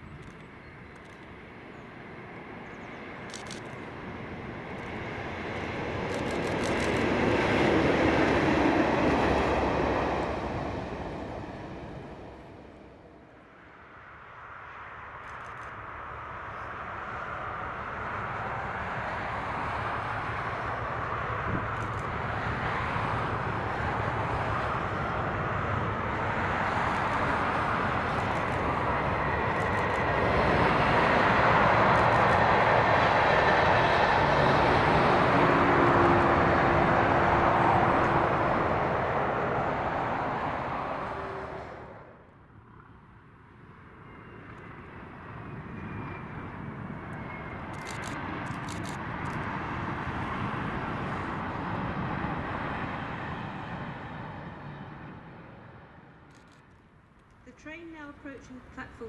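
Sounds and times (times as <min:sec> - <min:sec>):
cars and lorry passing: 0:00.0 - 0:59.0.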